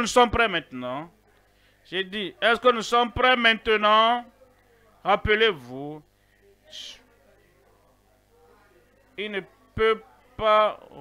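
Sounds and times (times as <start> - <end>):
faint background hum: 0.0 - 11.0.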